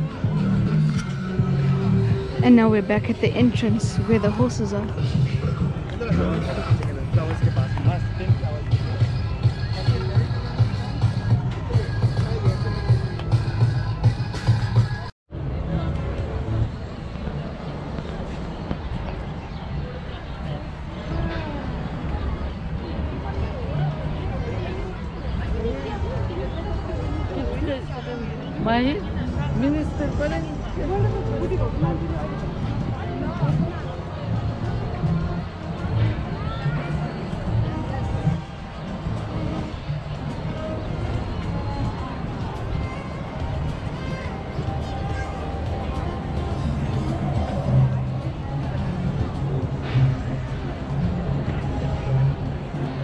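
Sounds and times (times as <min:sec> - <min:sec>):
music with sustained bass notes: 0:28.6 - 0:53.0.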